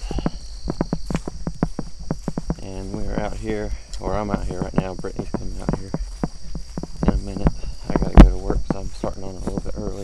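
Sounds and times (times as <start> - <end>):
crickets trilling: 0.0 - 10.0
footsteps crunching through grass: 0.0 - 10.0.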